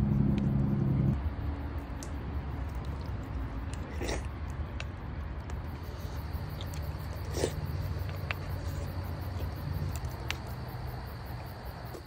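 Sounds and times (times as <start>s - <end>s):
low steady rumble: 0.0s - 11.9s
campfire crackle: 0.0s - 12.0s.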